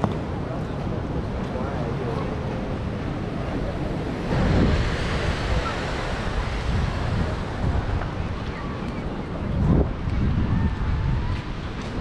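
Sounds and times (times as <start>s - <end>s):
surf: 0.0s - 12.0s
wind: 0.0s - 12.0s.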